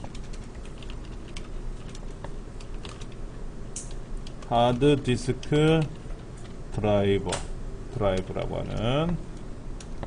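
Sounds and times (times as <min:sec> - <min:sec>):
computer keyboard typing: 0:00.0 - 0:03.2.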